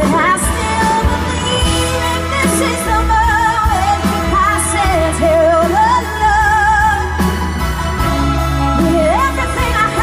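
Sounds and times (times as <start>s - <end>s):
woman singing a ballad: 0.0s - 7.6s, 8.7s - 10.0s
band accompaniment: 0.0s - 10.0s.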